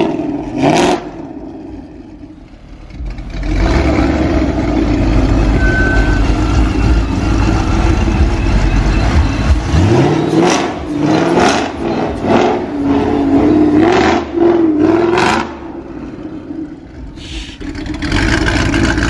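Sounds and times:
car engine idling and revving: 0.0s - 19.0s.

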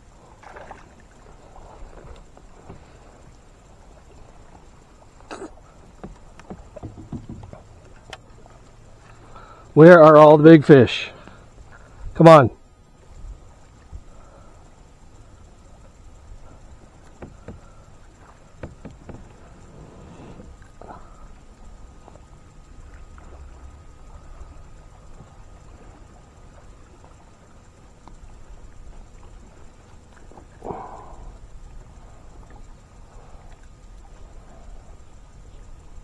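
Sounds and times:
water lapping against kayak: 0.0s - 36.0s
knocks on kayak: 6.0s - 7.6s, 17.2s - 17.7s, 18.6s - 19.5s.

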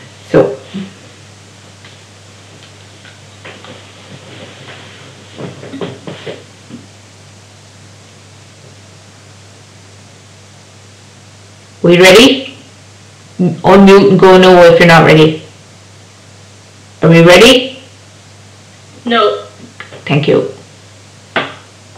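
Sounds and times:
steady low hum with hiss: 0.0s - 21.9s.

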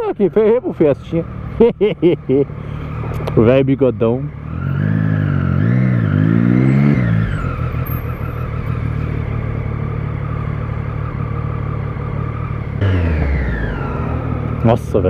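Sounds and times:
motorcycle engine revving: 0.0s - 15.0s.

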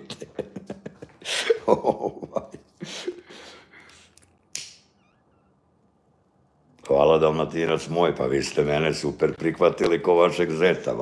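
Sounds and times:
man breathing out: 2.8s - 4.2s.

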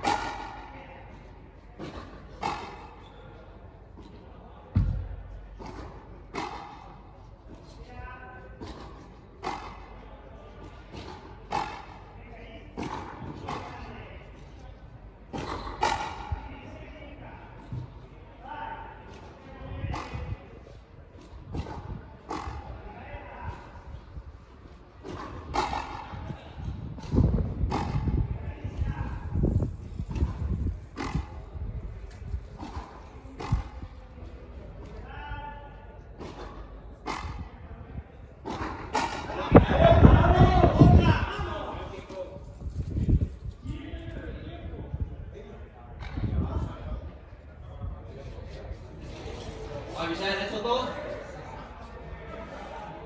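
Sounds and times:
ball slapping concrete wall: 5.6s - 6.8s, 30.1s - 31.4s
ball smacking racket and wall: 5.6s - 7.0s, 10.9s - 12.0s, 25.0s - 26.2s, 27.0s - 28.2s, 30.0s - 31.5s, 32.6s - 33.9s.

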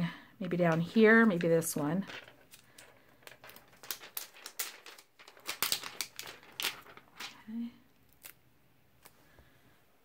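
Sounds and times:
plastic sticker sheet crinkling: 0.7s - 7.4s.

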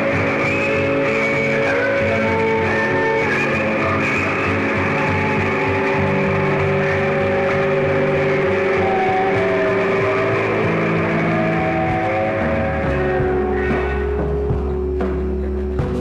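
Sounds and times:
long held guitar tone: 0.0s - 16.0s
rock band droning: 0.0s - 16.0s.

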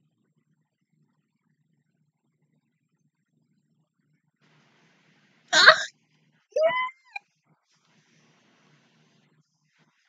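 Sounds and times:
woman squealing: 5.6s - 5.9s, 6.6s - 7.2s.

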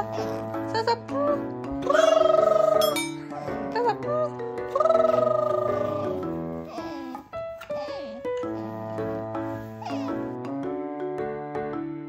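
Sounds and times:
gentle piano music: 0.0s - 12.0s.

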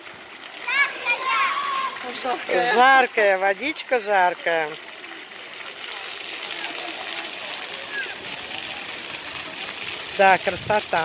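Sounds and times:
fountain jets spraying: 0.0s - 11.0s
water splashing on stone paving: 0.0s - 11.0s.

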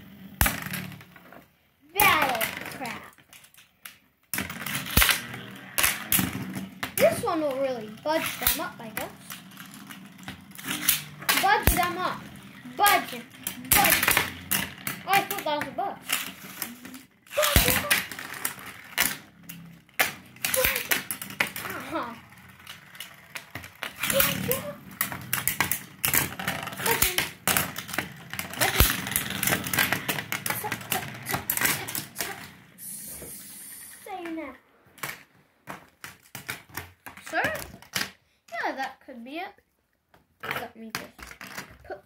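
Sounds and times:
spinning tops clacking: 4.4s - 34.1s.

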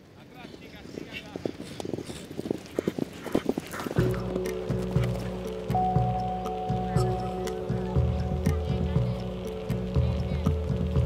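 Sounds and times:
horse hooves clopping: 0.0s - 10.8s.

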